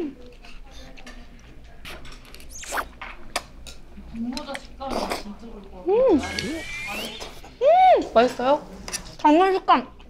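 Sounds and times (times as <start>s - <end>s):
person slurping noodles: 2.5s - 2.9s.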